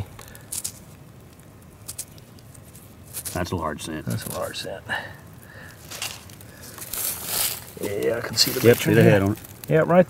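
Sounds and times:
dry soil rustling: 0.0 - 10.0.

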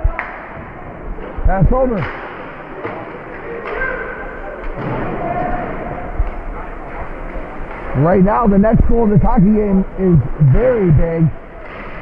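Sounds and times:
arena background hum: 0.0 - 12.0
sharp knocks of hockey play: 1.9 - 6.4.

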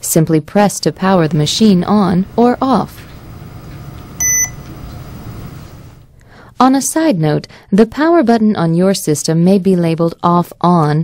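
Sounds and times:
short electronic beep: 4.2 - 4.8.

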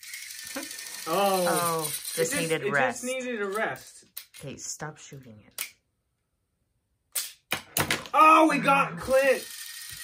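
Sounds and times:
toy launcher snap: 7.1 - 7.9.

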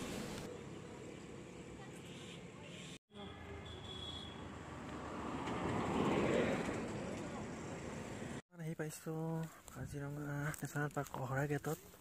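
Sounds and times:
road vehicle passing by: 4.4 - 8.4.

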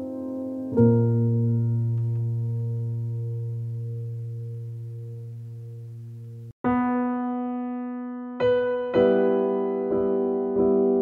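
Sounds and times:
low piano chord: 0.0 - 11.0.

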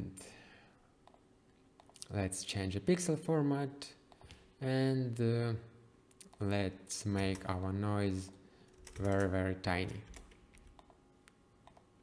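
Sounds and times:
computer keyboard keystrokes: 8.7 - 11.0.

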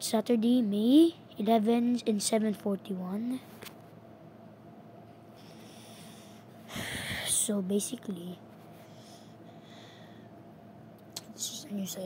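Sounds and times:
loud breath close to microphone: 5.4 - 7.3, 8.8 - 10.3.

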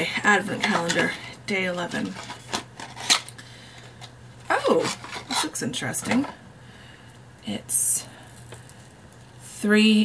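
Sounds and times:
crackles and clicks: 8.2 - 9.4.

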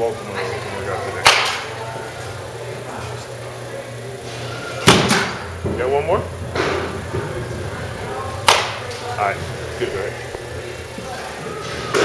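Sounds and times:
low hum of indoor hall: 0.0 - 12.0
faint background voices: 6.8 - 12.0.

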